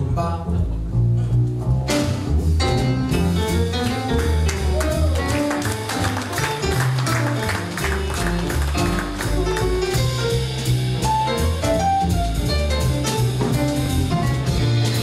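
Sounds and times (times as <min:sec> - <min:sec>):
jazz piano: 0:00.0 - 0:15.0
plucked double bass: 0:00.0 - 0:15.0.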